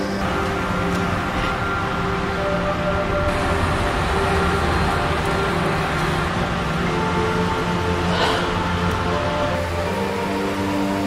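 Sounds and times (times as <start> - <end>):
slow music with held notes: 0.0 - 11.0
steady hiss: 0.0 - 11.0.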